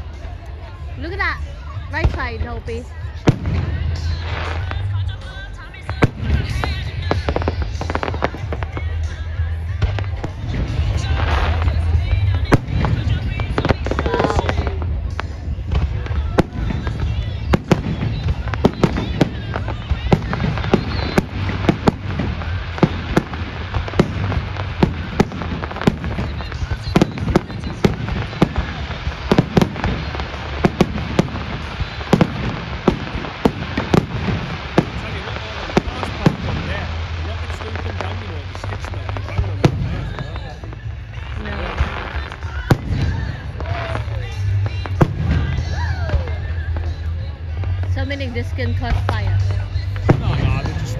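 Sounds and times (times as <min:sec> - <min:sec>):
fireworks bangs and crackles: 0:00.0 - 0:50.9.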